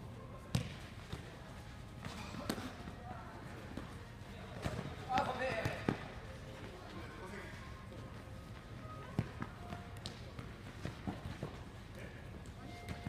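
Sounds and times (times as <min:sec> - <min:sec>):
ball kicked with sharp thuds: 0:00.5 - 0:01.3.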